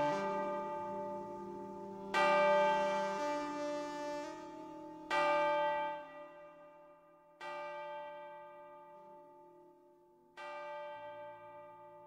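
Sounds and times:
bell-like tones ringing: 0.0s - 6.1s.

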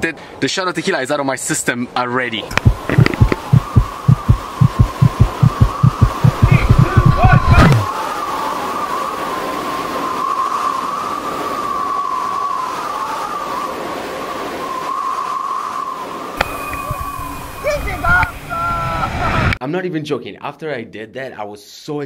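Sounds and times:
fast low thumps: 2.5s - 7.9s
whistling rush of air: 2.7s - 19.6s.

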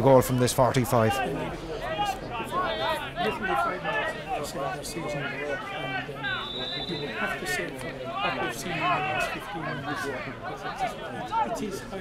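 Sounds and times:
murmur of overlapping conversation: 0.0s - 12.0s.

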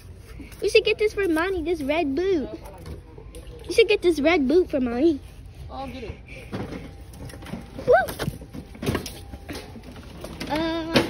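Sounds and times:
shop background noise: 0.0s - 11.0s.

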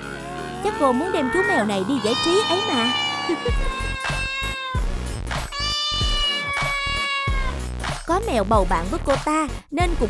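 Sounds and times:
kitten meowing: 0.3s - 4.8s, 5.5s - 7.6s
background music with a beat: 3.5s - 10.0s.

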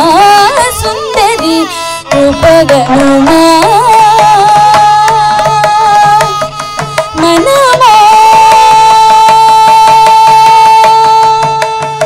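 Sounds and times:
mridangam drum strokes: 0.0s - 12.0s
violin: 0.0s - 12.0s
woman singing: 0.0s - 12.0s.

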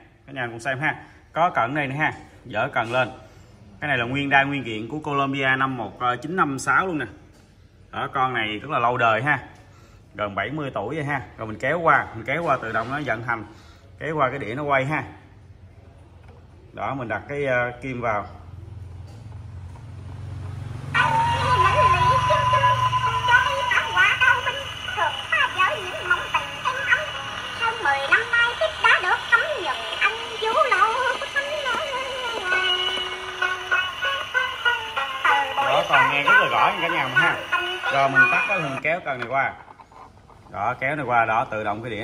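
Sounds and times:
gramophone record with singing: 20.9s - 39.0s.

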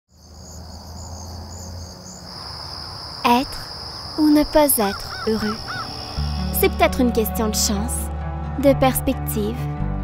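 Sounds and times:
crickets trilling: 0.1s - 7.4s.

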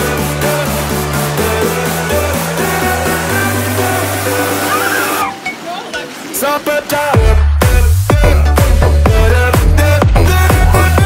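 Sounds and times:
pop music with bass line: 0.0s - 11.0s.

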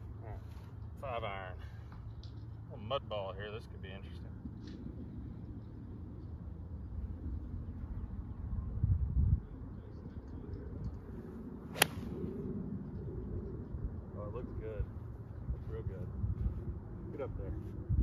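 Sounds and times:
golf club striking ball: 11.7s - 12.2s.

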